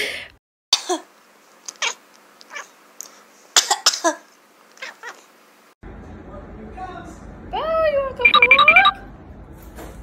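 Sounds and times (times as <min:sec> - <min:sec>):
cat meowing: 0:04.8 - 0:05.3.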